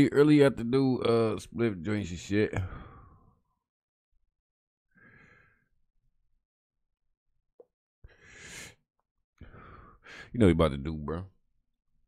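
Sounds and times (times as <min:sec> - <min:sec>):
person breathing into microphone: 0:08.1 - 0:08.8.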